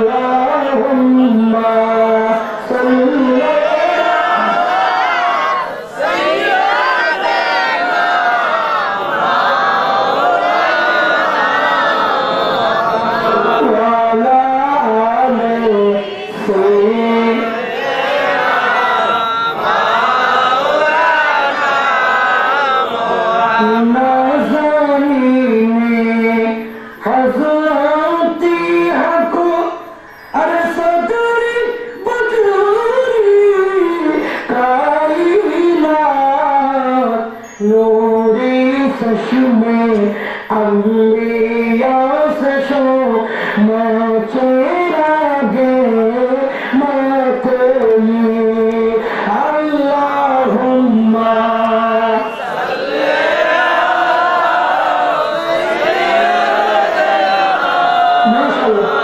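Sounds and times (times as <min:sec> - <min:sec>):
man chanting into a microphone: 0:00.0 - 0:04.8, 0:10.3 - 0:22.0, 0:22.8 - 0:52.8, 0:58.0 - 0:59.0.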